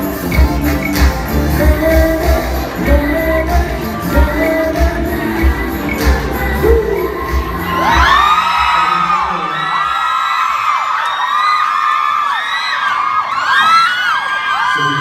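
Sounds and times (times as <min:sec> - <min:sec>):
backing music with pounding bass: 0:00.0 - 0:08.8
crowd screaming and cheering: 0:00.0 - 0:15.0.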